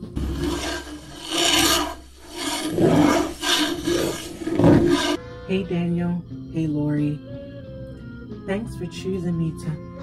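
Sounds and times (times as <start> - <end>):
rasping scraping noise: 0.0 - 5.2.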